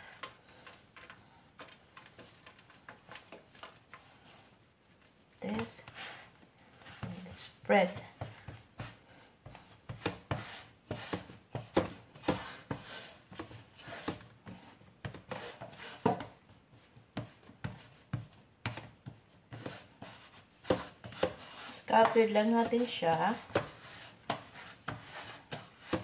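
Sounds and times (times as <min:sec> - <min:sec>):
hands patting dough: 0:00.0 - 0:26.0
dough scraping in pan: 0:01.6 - 0:07.6, 0:08.2 - 0:26.0.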